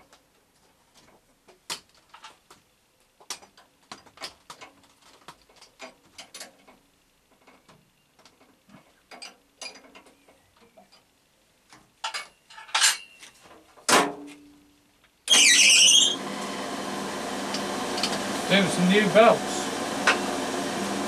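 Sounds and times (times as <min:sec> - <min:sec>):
drill motor humming: 0:15.3 - 0:21.0.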